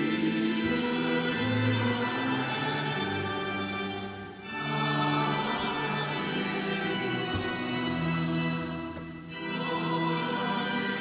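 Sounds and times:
church organ: 0.0s - 11.0s
congregation singing a psalm: 0.0s - 11.0s.

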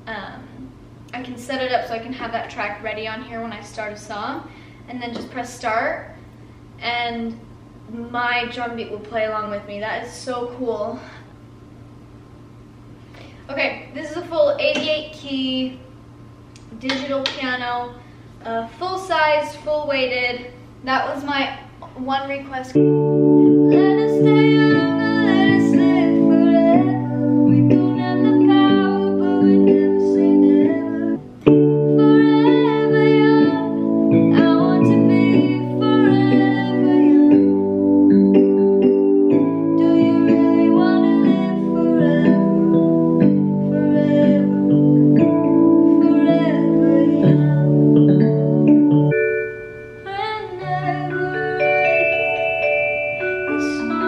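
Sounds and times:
piano chords: 21.9s - 54.0s
bell-like piano notes: 22.7s - 54.0s.

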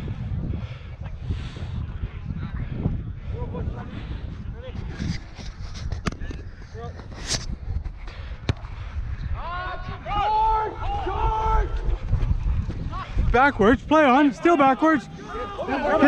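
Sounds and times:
wind rumbling on microphone: 0.0s - 16.0s
players shouting: 14.2s - 16.0s.

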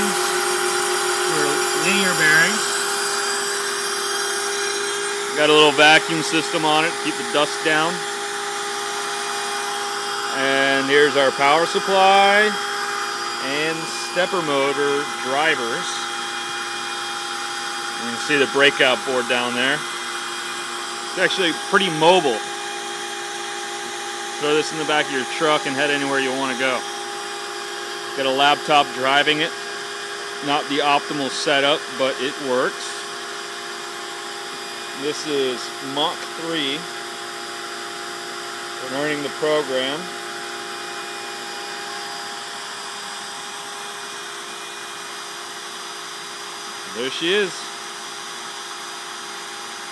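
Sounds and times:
dust vacuum running: 0.0s - 49.9s
machine whir with whining tones: 0.0s - 49.9s
router spindle drone: 0.0s - 49.9s.

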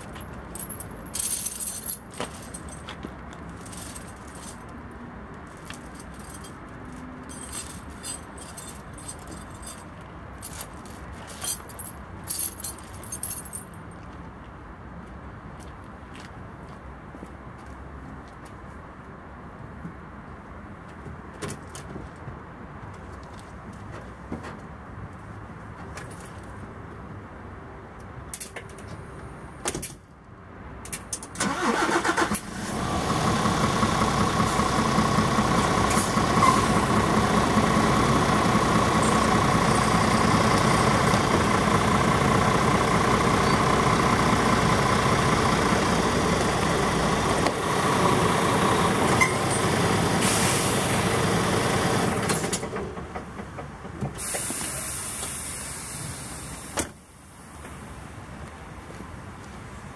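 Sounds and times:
diesel truck engine running: 31.4s - 53.2s.

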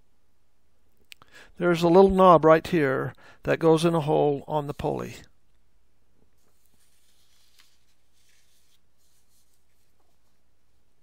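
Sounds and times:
soft scrapes and clicks: 6.2s - 10.4s.

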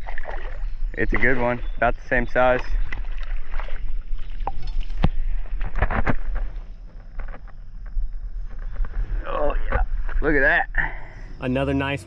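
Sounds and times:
fish splashing at water's edge: 0.0s - 6.5s
wind rumble on microphone: 2.6s - 10.9s.

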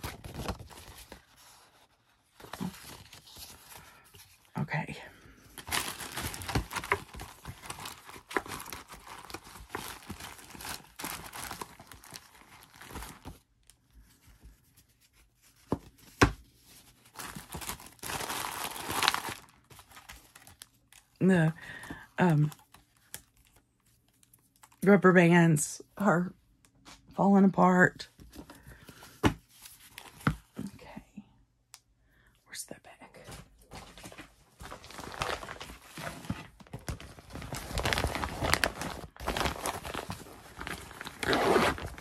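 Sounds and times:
paper and plastic bag rustling: 5.5s - 13.4s, 16.8s - 20.8s, 33.7s - 42.0s.

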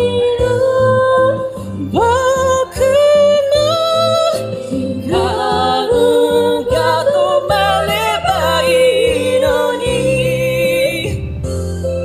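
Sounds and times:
woman singing: 0.0s - 11.3s.

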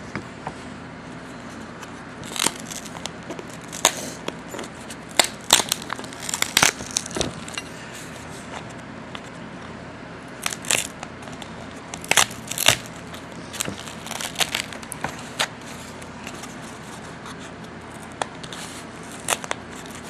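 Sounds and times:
packing material crinkling: 2.2s - 8.2s, 10.4s - 20.0s.

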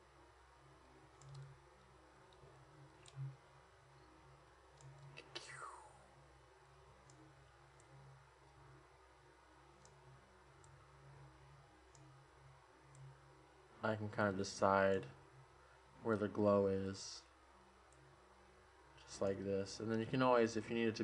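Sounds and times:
computer mouse clicks: 1.1s - 3.4s, 4.7s - 5.4s, 7.0s - 8.6s, 9.8s - 10.0s, 10.6s - 10.8s, 11.9s - 12.2s, 12.9s - 13.2s.

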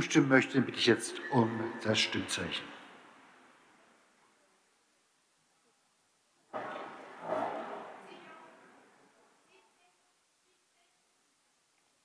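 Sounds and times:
indistinct voices in echoing hall: 0.2s - 3.0s, 6.5s - 9.7s.

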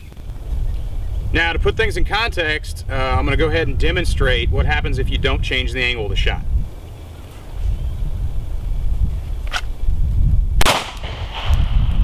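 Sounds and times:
handgun shot with echo: 10.6s - 11.7s.

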